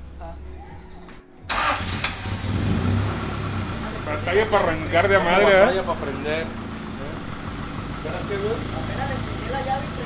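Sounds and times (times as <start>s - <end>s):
car engine starting and running: 1.5s - 10.0s.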